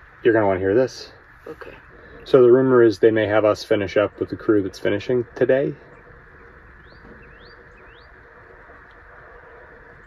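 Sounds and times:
low background hiss: 0.0s - 10.0s
small bird chirping: 4.0s - 10.0s.

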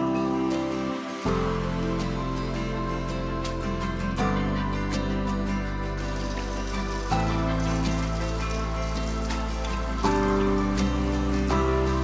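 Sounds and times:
background music: 0.0s - 12.0s
dough sizzling in hot oil: 6.0s - 12.0s.

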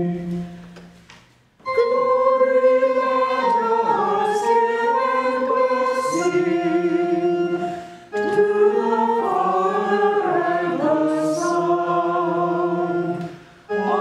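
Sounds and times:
church choir singing: 0.0s - 0.8s, 1.7s - 14.0s
organ chord: 1.6s - 14.0s.

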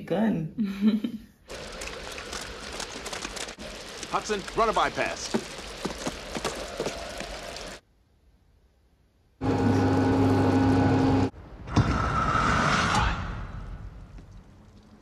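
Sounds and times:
rain: 1.5s - 7.8s, 13.8s - 15.0s.

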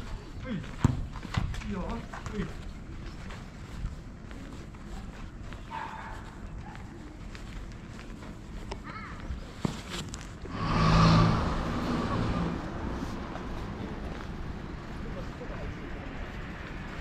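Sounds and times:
residential street ambience: 0.0s - 17.0s.

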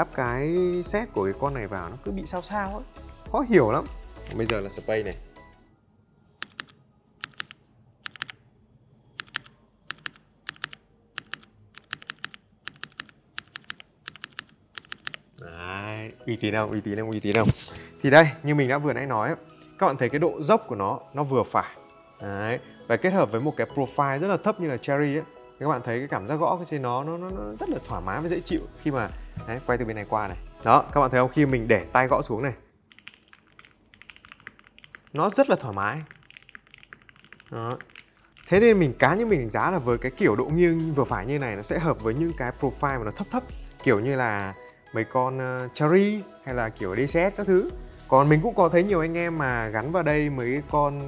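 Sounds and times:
keyboard spacebar clicking: 6.4s - 8.4s, 9.2s - 15.2s.

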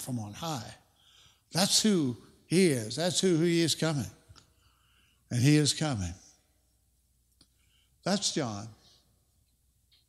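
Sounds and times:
man speaking: 0.0s - 0.8s, 1.5s - 4.2s, 5.3s - 6.3s, 8.0s - 8.9s.

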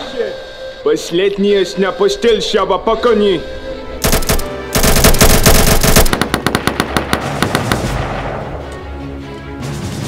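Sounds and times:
automatic gunfire: 4.0s - 8.0s.

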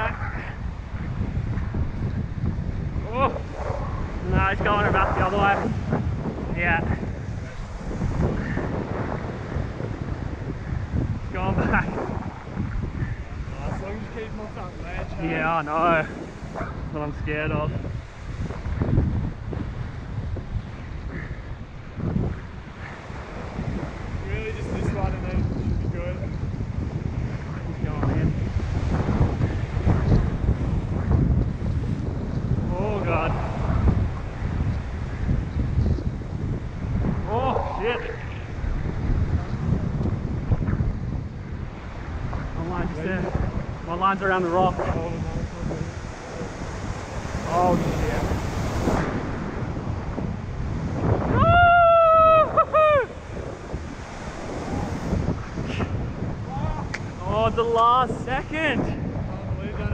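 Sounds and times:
wind buffeting microphone: 0.0s - 59.9s
ocean swell washing over rocks: 28.4s - 58.8s
man's long high yell: 51.3s - 53.2s.

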